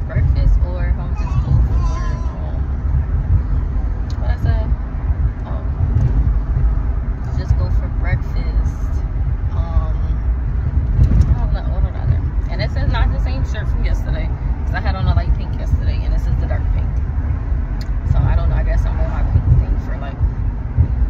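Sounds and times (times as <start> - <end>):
car cabin rumble: 0.0 - 21.0.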